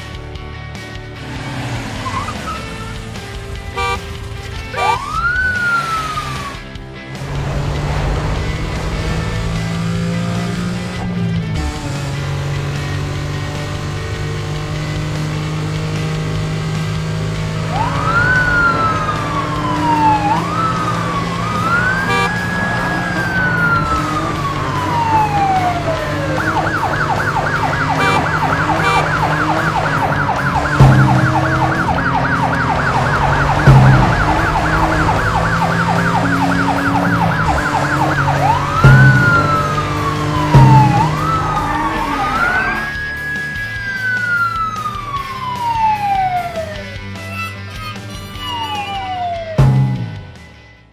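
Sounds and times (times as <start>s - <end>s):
background music: 0.0s - 50.9s
police siren wailing and yelping: 2.0s - 3.1s, 3.8s - 4.0s, 4.7s - 6.8s, 17.6s - 47.1s, 48.0s - 49.6s
low thumps: 29.1s - 36.5s, 37.1s - 41.3s.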